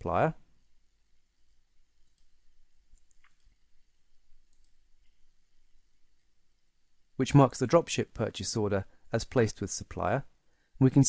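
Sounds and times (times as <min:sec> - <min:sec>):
computer mouse clicks: 0:02.0 - 0:05.2.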